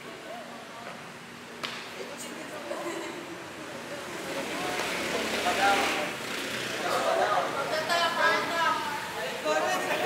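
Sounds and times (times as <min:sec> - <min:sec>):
crowd chattering and calling out: 0:01.9 - 0:10.0.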